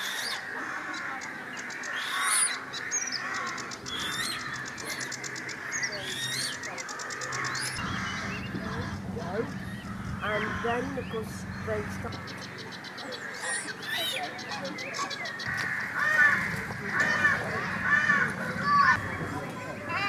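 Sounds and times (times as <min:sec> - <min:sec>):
birds chirping: 0:00.0 - 0:20.0
harsh bird calls: 0:00.0 - 0:20.0
low steady hum: 0:07.3 - 0:12.7.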